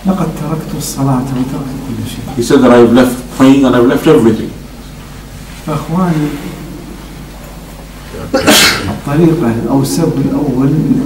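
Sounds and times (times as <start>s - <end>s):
man speaking over a microphone: 0.0s - 4.6s, 8.2s - 11.0s.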